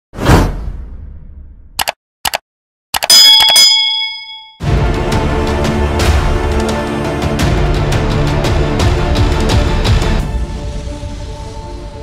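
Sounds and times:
quick double clicks: 1.8 - 2.4, 3.0 - 3.6
bright bell ding: 3.0 - 4.6.

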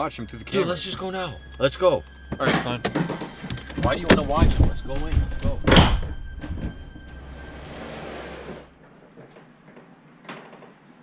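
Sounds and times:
low hum: 0.0 - 9.5.

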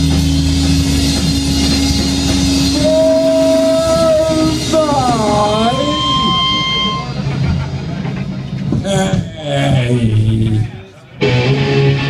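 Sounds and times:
punk rock band playing: 0.0 - 12.0.

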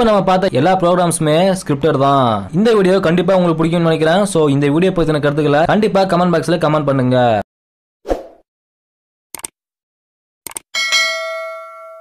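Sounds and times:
notification bell chime: 10.8 - 12.0.

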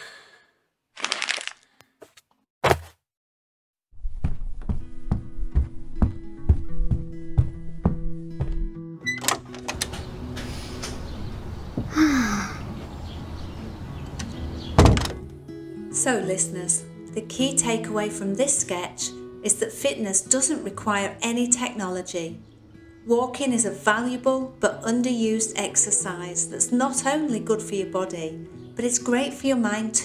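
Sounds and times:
crackling crunching burst: 1.0 - 1.7
door shutting heavily: 9.1 - 12.0, 14.7 - 15.2.

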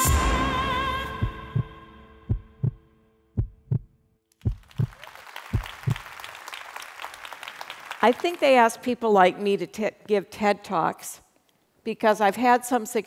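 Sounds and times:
heartbeat double thumps: 1.1 - 2.8, 3.4 - 4.9, 5.6 - 6.0.

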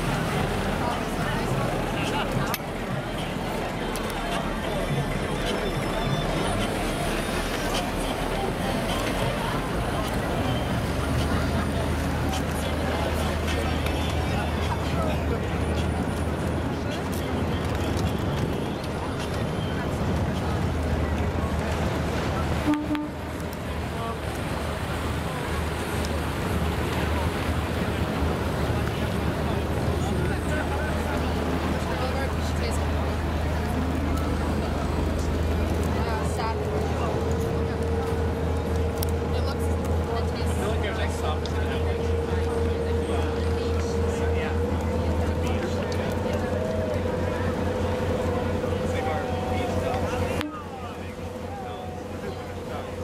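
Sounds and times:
boat engines humming: 0.0 - 53.0
distant chatter of voices: 0.0 - 53.0
water noise: 0.0 - 53.0.

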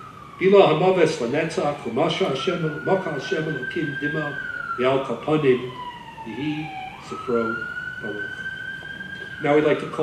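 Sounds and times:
emergency siren wailing: 0.0 - 10.0.

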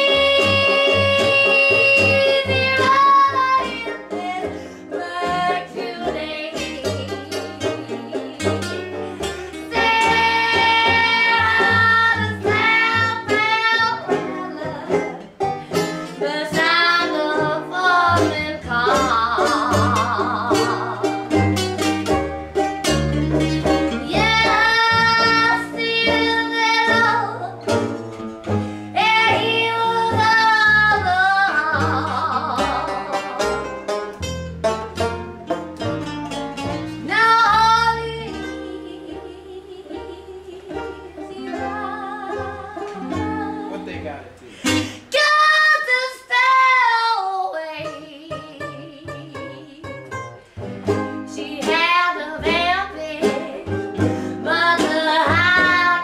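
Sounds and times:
woman singing blues: 0.0 - 21.6, 23.8 - 28.0, 28.7 - 33.5, 36.9 - 56.0
upright bass: 0.0 - 45.3, 46.4 - 56.0
acoustic band playing: 0.0 - 56.0
plucked strings: 0.0 - 56.0.

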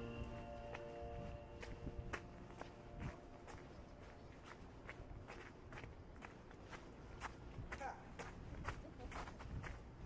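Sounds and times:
footsteps on slushy sidewalk: 0.0 - 10.0.

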